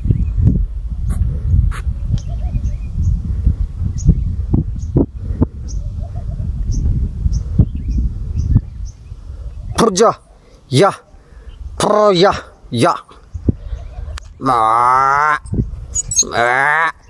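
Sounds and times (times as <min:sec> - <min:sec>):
wind rumbling on microphone: 0:00.0 - 0:10.4, 0:11.0 - 0:17.0
high bird chirps: 0:15.5 - 0:16.5.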